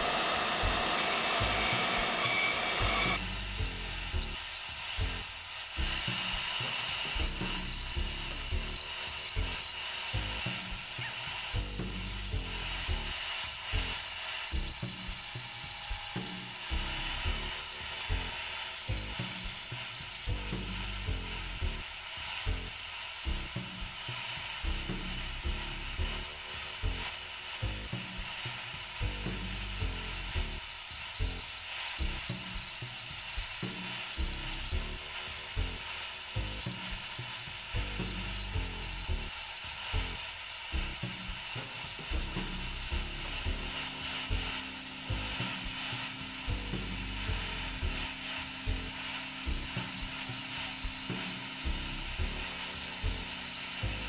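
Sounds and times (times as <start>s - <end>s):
bandsaw cutting wood: 0.0s - 54.0s.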